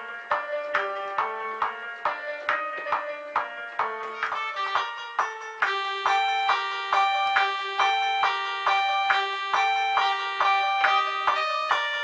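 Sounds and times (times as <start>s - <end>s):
keyboard melody: 0.0s - 12.0s.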